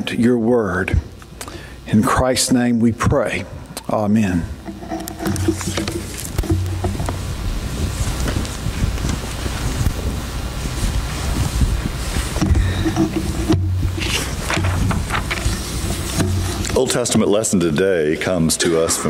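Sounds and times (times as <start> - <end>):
rumbling and rustling on microphone: 2.1 - 19.0.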